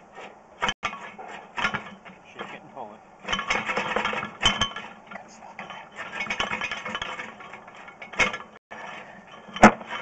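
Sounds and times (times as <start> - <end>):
cable clinking and rattling in pipe: 0.2 - 2.6, 3.2 - 10.0.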